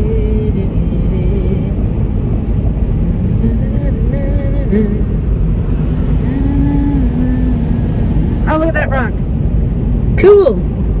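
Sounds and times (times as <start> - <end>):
car cabin road and engine noise: 0.0 - 11.0.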